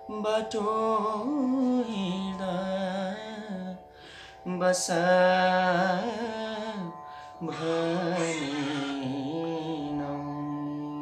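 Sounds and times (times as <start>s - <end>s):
faint musical backing: 0.0s - 11.0s
man singing a held note: 7.4s - 11.0s.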